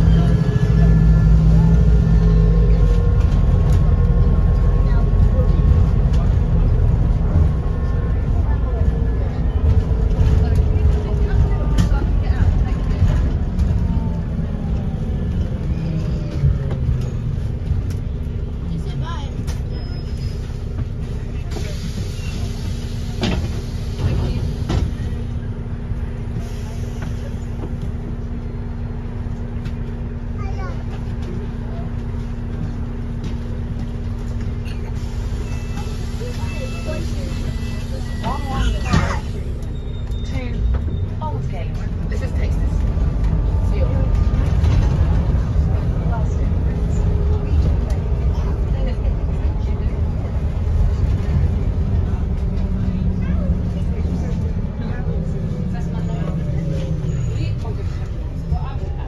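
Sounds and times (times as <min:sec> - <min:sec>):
bus engine rumble and whine: 0:00.0 - 0:59.0.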